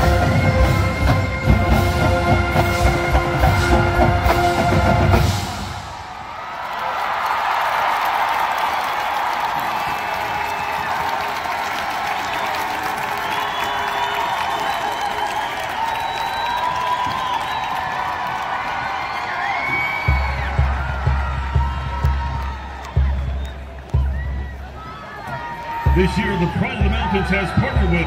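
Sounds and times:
marching band chord: 0.0s - 6.0s
crowd cheering and applauding: 0.0s - 28.0s.

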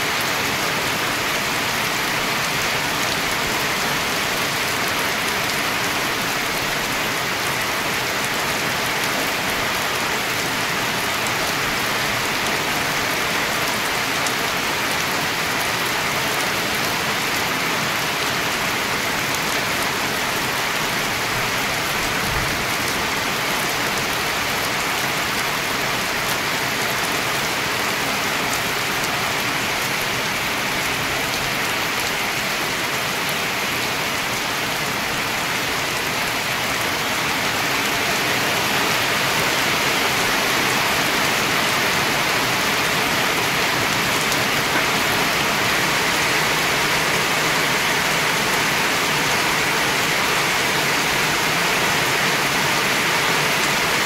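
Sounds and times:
heavy rain pouring: 0.0s - 54.0s.

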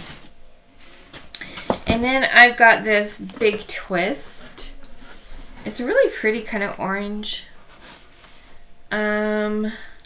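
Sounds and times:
woman speaking: 1.8s - 4.8s, 5.6s - 7.5s, 8.9s - 10.0s.

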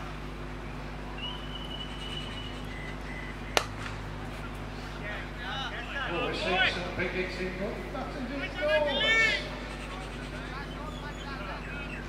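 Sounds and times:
players calling out: 0.0s - 12.0s
cricket bat striking ball: 3.5s - 4.1s.

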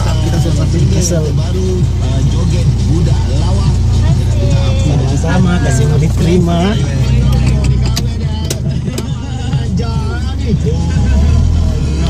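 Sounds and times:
car cabin rumble: 0.0s - 12.0s
faint voices: 0.0s - 12.0s
music playing: 0.0s - 12.0s
sharp clicks: 7.3s - 9.2s.

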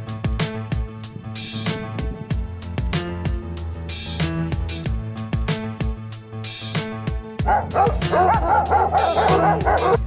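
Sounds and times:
music with steady beat: 0.0s - 10.0s
dog barking: 7.4s - 10.0s.

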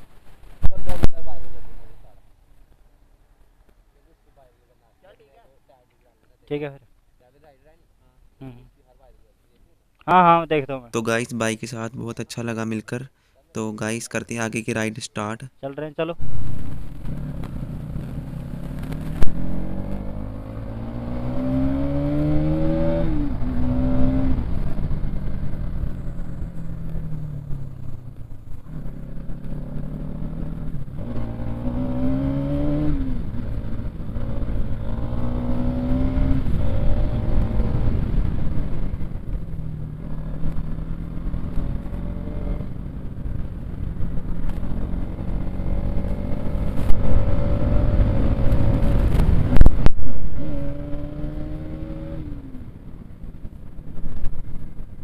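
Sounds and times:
wind and road noise: 0.0s - 7.9s, 9.5s - 55.0s
motorcycle engine shifting gears: 16.2s - 55.0s.

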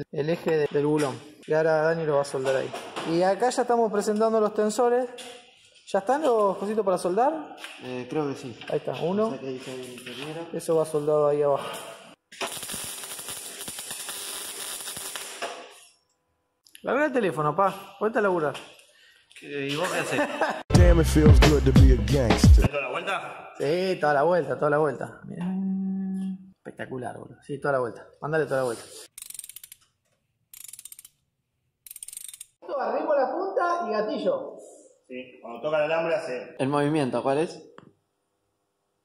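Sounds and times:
welder arc crackling: 12.2s - 16.1s
ratchet wrench clicking: 29.1s - 29.9s, 30.5s - 31.2s, 31.8s - 32.6s.

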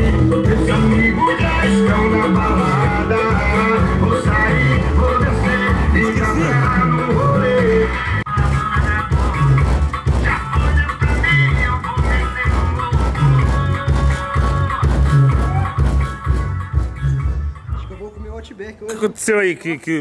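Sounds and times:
car stereo song with heavy bass: 0.0s - 18.5s.

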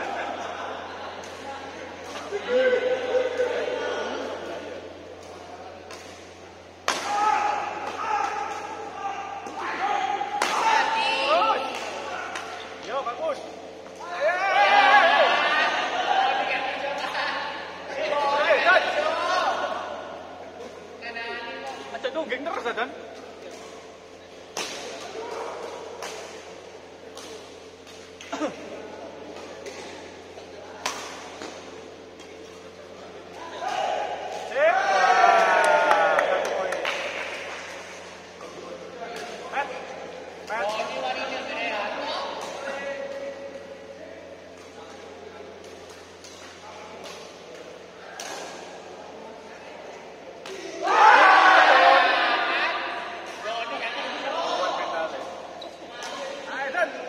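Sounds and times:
voices in large hall: 0.0s - 57.0s
rackets striking shuttlecock: 5.1s - 8.8s, 29.2s - 34.5s, 45.6s - 48.8s
racket hitting shuttlecock: 30.8s - 32.8s, 45.6s - 48.8s.

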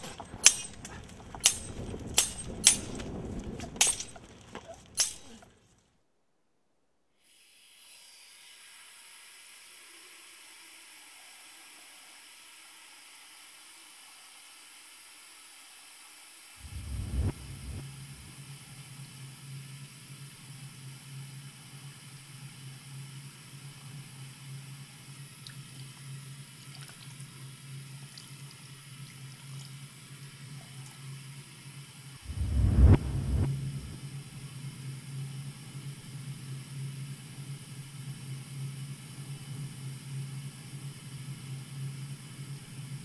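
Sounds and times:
steady hiss: 0.0s - 5.4s, 7.2s - 25.4s, 31.3s - 43.0s
loud low thump: 16.6s - 18.3s, 32.3s - 34.0s
rushing fluctuating noise: 16.6s - 18.3s, 32.3s - 34.1s
steady low hum: 16.6s - 18.6s, 32.2s - 43.0s.

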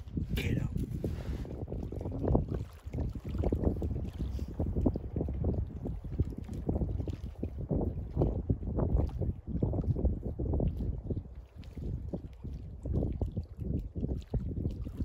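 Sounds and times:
gusty wind buffeting microphone: 0.0s - 15.0s.

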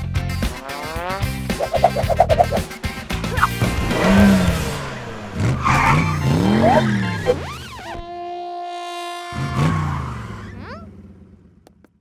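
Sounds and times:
cartoon car engine revving: 0.4s - 11.1s
tyre screech: 3.3s - 7.9s.

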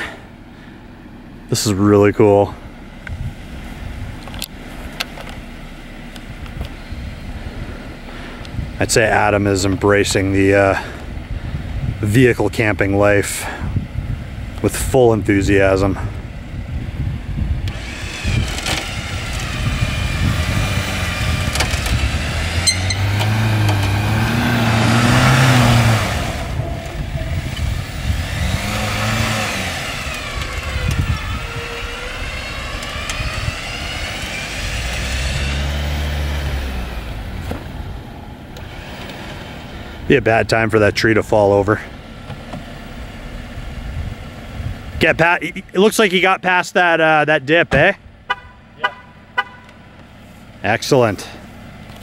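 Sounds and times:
engine revving: 14.3s - 47.2s
electric winch whining: 17.6s - 37.3s, 38.3s - 40.0s
wheels churning in mud: 17.7s - 37.2s.

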